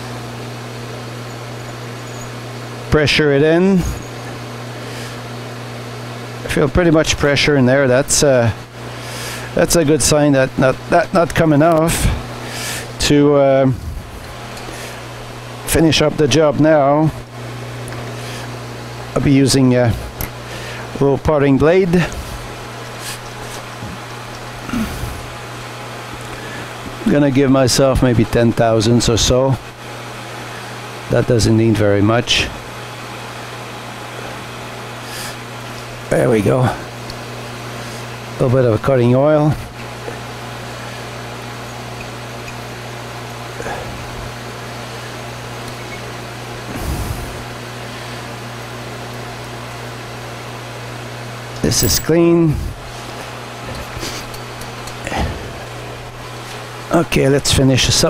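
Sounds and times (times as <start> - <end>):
metal lathe running: 0.0 - 13.4, 33.2 - 46.7, 47.4 - 57.9.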